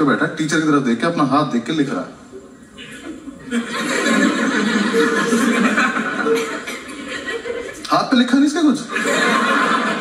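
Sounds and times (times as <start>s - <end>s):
audience laughing: 2.8s - 7.9s, 8.9s - 10.0s.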